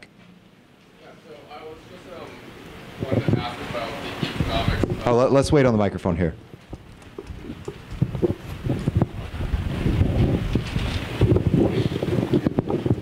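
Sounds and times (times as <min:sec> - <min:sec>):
microphone handling noise: 0:04.2 - 0:05.1, 0:06.4 - 0:13.0.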